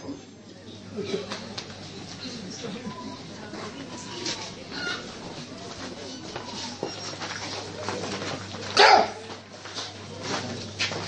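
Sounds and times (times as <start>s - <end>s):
faint busy background: 0.0s - 11.0s
dog barking loudly: 8.8s - 9.2s.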